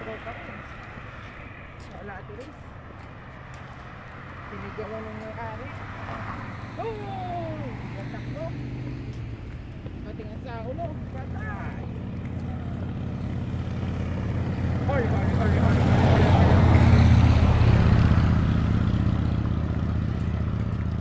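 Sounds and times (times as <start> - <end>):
pickup truck driving past: 0.0 - 21.0.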